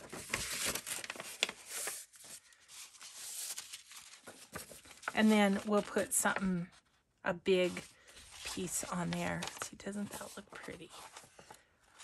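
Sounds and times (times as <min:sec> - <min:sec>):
paper rustling and sliding: 0:00.0 - 0:06.4, 0:07.6 - 0:12.0.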